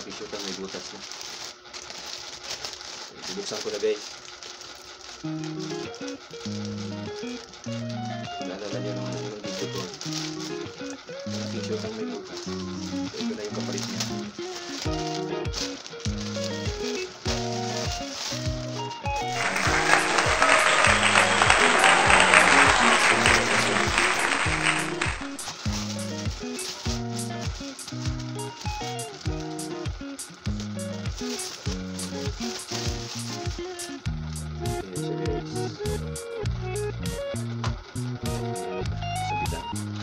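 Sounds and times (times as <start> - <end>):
plastic packaging crinkling: 0.0 - 34.0
background music with beat: 14.2 - 40.0.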